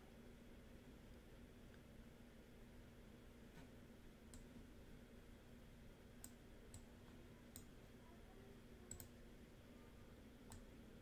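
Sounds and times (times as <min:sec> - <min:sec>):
computer mouse clicks: 0:04.3 - 0:04.5, 0:06.2 - 0:06.9, 0:07.5 - 0:07.7, 0:08.9 - 0:09.2, 0:10.4 - 0:10.7.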